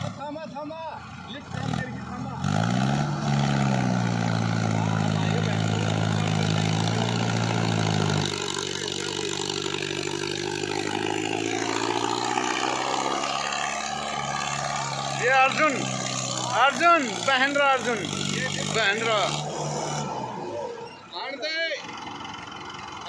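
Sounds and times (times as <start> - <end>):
tractor diesel engine under load: 0.0 - 23.0.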